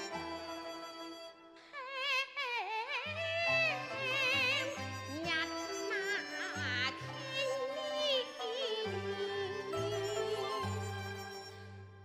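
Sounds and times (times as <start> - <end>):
instrumental accompaniment: 0.0 - 1.6, 3.7 - 12.0
opera singing with vibrato: 1.7 - 10.8.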